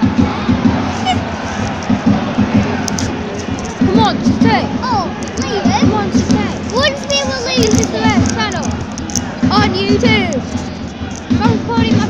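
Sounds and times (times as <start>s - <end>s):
low thumps: 0.0s - 12.0s
stadium crowd cheering: 0.0s - 12.0s.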